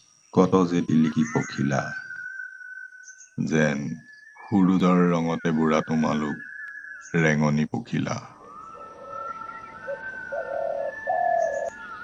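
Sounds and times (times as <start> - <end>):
dove cooing: 8.2 - 12.0.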